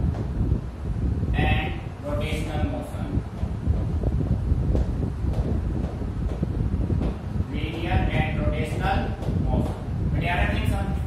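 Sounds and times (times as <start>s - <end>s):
steady low rumble: 0.0s - 11.0s
man talking: 1.4s - 3.2s, 7.5s - 11.0s.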